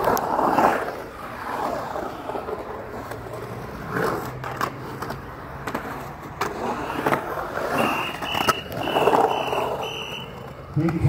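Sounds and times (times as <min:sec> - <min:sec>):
skateboard wheels rolling on concrete: 0:00.0 - 0:11.0.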